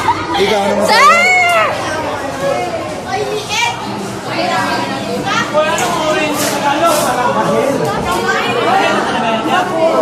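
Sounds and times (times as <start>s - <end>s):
crowd of teenagers chattering: 0.0s - 10.0s.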